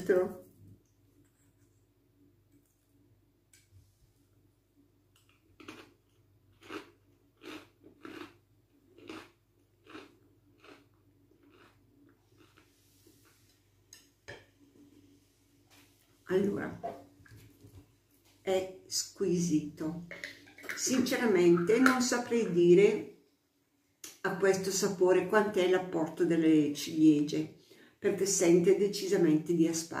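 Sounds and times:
cracker crunching being chewed: 5.1 - 13.6.

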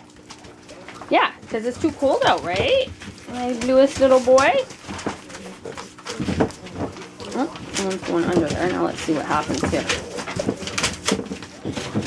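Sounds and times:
puppies grunting: 0.0 - 12.0.

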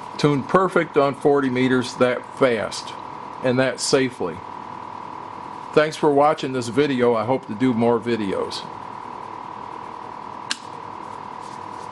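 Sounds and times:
sharp click: 10.5 - 10.8.

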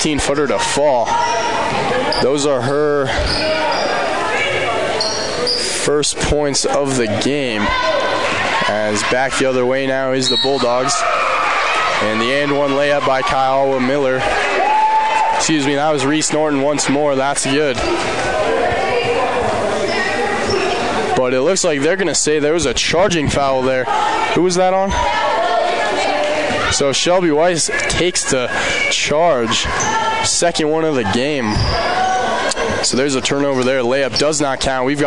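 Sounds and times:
crowd talking and calling out: 0.0 - 35.0
voices echoing in a hall: 0.0 - 35.0.

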